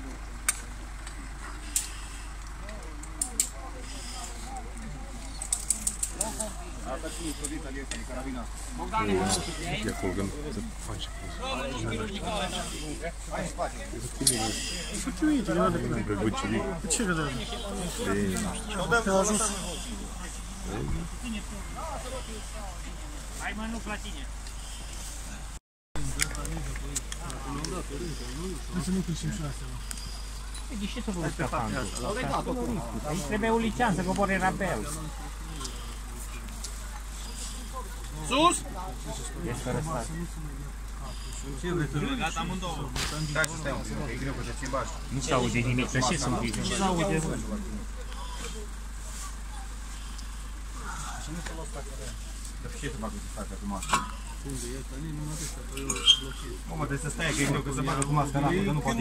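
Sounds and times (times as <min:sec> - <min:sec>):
low background voices: 0:00.0 - 0:23.5, 0:24.3 - 0:59.0.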